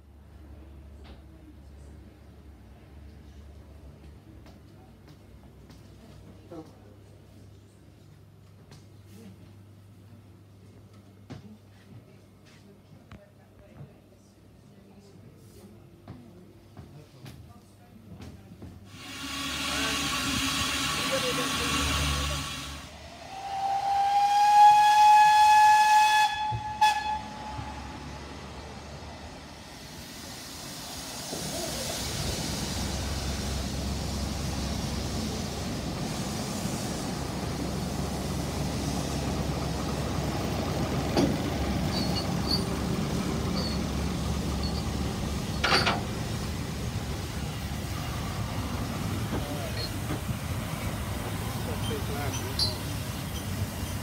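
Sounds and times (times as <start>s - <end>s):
steam whistle blast: 18.9s - 28.1s
train carriages rumbling on rails: 24.5s - 29.9s, 31.0s - 54.0s.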